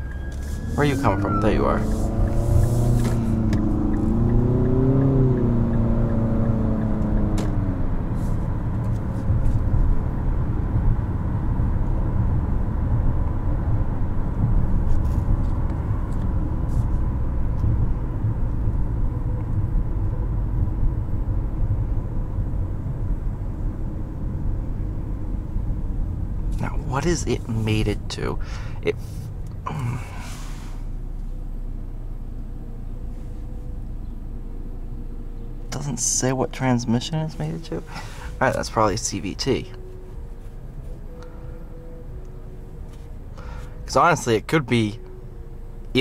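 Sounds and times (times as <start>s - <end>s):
car engine accelerating: 0.0s - 46.0s
road and tyre rumble: 0.0s - 46.0s.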